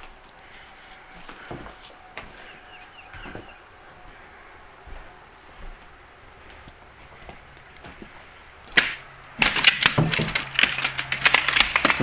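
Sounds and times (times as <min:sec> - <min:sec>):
clothes hangers clinking on rod: 0:09.4 - 0:12.0.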